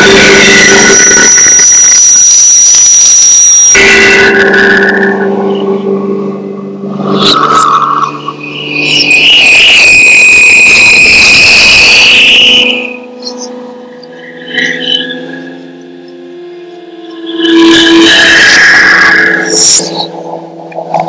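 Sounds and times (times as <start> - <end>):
high whistling squeal: 0.0 - 20.7
experimental electronic music: 0.0 - 21.0.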